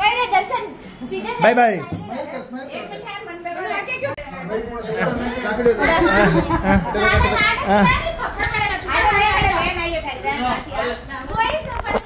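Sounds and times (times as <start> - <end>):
overlapping chatter of people: 0.0 - 12.0.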